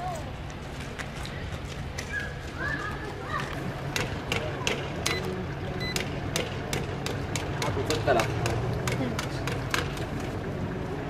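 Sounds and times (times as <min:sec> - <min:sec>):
short electronic beeps: 0:05.1 - 0:06.0.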